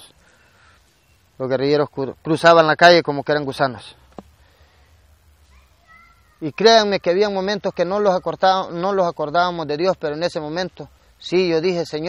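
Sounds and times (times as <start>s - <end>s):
low background hum: 0.0s - 12.0s
faint animal call: 5.4s - 8.3s.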